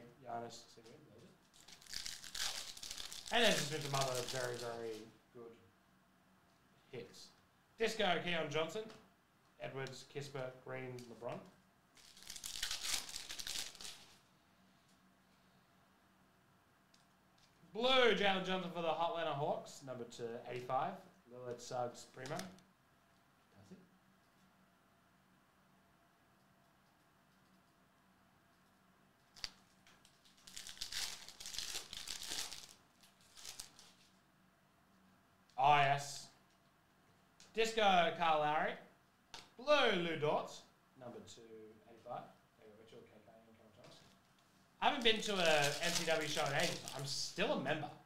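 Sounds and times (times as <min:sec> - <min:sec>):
foil wrapper tearing and crinkling: 0:01.6 - 0:04.9, 0:12.0 - 0:14.2, 0:29.4 - 0:34.0, 0:44.9 - 0:47.1.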